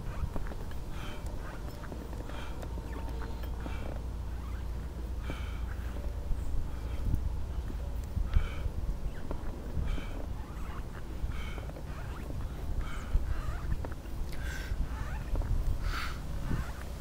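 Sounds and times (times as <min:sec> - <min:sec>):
wheels rolling on asphalt: 0:00.0 - 0:17.0.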